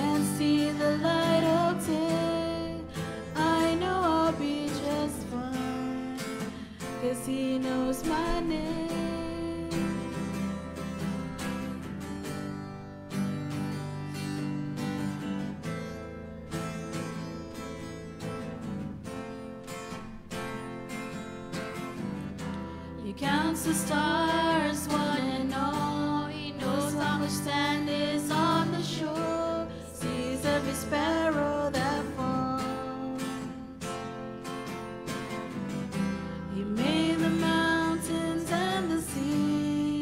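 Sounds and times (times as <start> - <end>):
girls singing: 0.0 - 6.4, 7.0 - 10.1, 23.1 - 33.1, 36.5 - 40.0
acoustic guitar strumming: 0.0 - 40.0.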